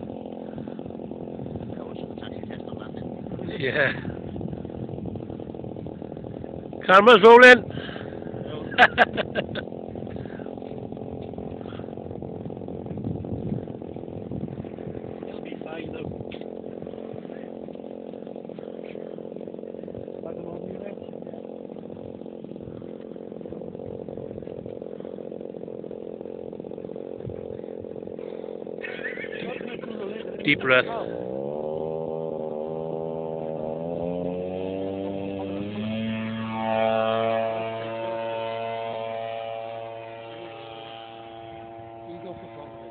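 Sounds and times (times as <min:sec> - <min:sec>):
model plane petrol engine running: 0:00.0 - 0:42.9.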